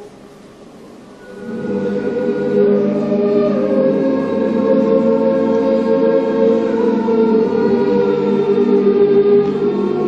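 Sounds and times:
boys' and men's choir singing: 1.2s - 10.0s.

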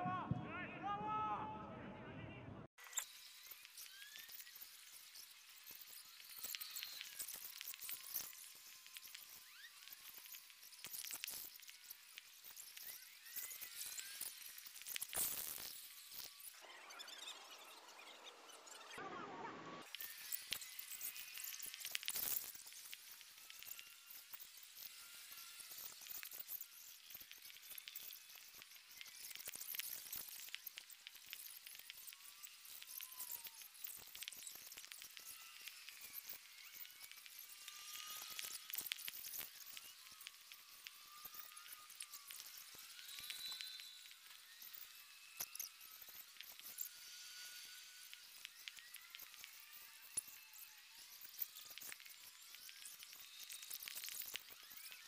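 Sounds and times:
small clicks: 2.8s - 16.6s, 19.8s - 55.0s.

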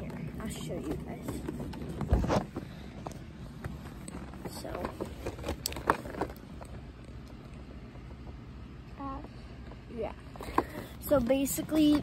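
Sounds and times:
toy box handling clicks and knocks: 0.0s - 6.9s, 10.4s - 12.0s
low steady rumble: 0.0s - 12.0s.

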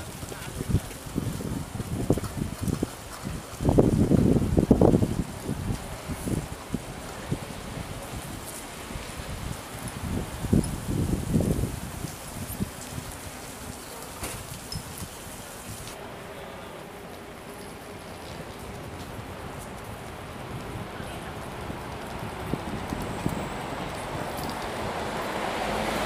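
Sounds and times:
wind buffeting microphone: 0.0s - 16.0s, 17.3s - 26.0s.

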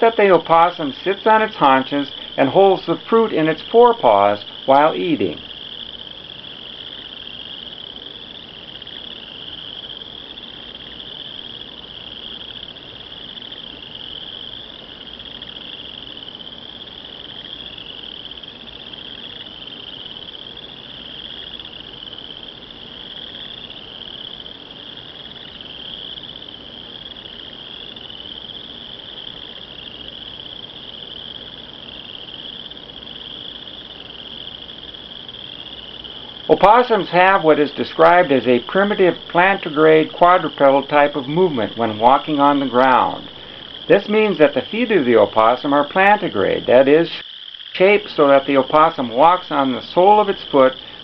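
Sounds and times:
insects calling: 0.0s - 51.0s.

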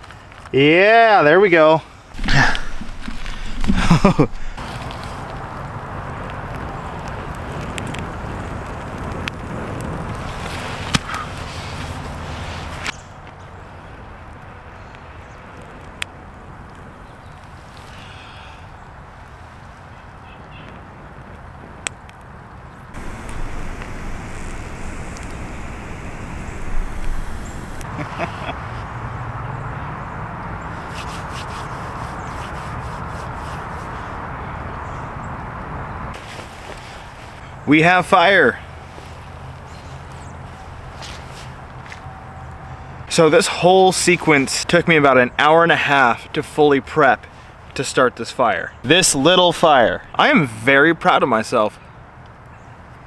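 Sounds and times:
person blowing on tinder: 23.0s - 27.9s.

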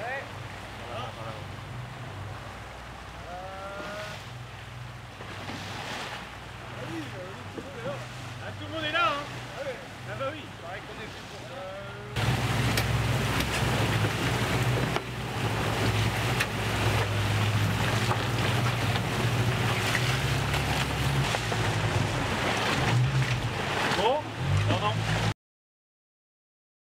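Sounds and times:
boat engine humming: 0.0s - 25.3s
rushing water: 0.0s - 25.4s.

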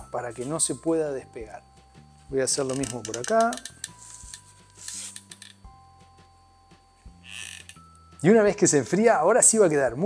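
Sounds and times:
quiet background music: 0.0s - 10.0s
faint rustles of hand work: 2.1s - 5.5s.

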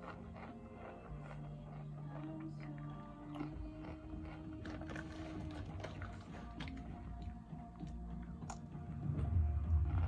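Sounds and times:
chewing crunchy chip: 0.0s - 8.7s
quiet background music: 0.0s - 10.0s.

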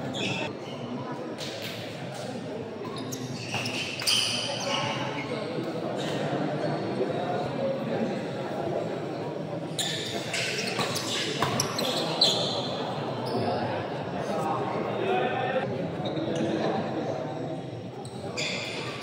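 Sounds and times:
spectators chattering: 0.0s - 19.0s.

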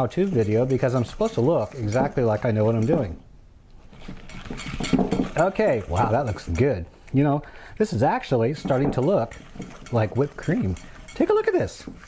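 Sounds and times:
wire whisk scraping a bowl: 0.0s - 3.2s, 3.9s - 6.8s, 7.8s - 12.0s.

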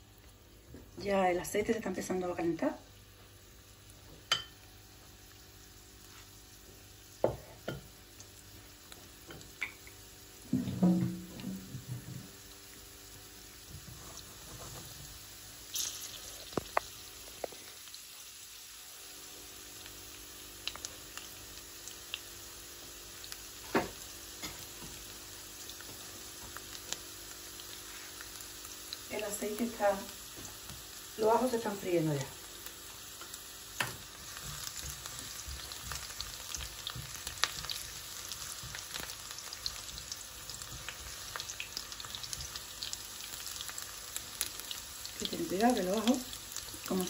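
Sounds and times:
garlic sizzling in oil: 0.0s - 47.0s.

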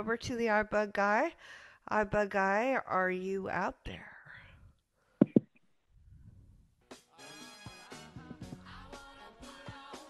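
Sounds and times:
faint breathy noise: 1.4s - 1.9s.

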